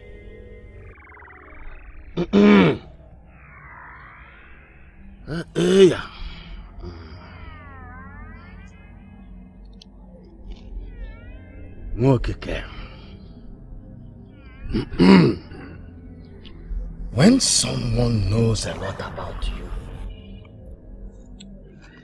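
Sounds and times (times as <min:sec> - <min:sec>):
background music with swooping tones: 0:00.0 - 0:22.0.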